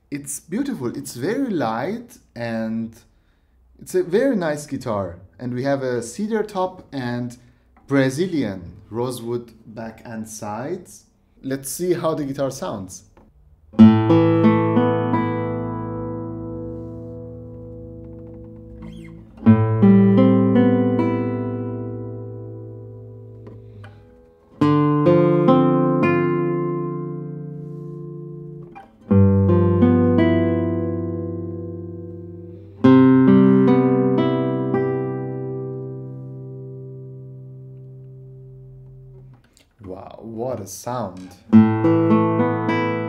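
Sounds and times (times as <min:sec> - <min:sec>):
classical guitar fingerstyle chords: 0:13.7 - 0:39.6, 0:41.2 - 0:43.0.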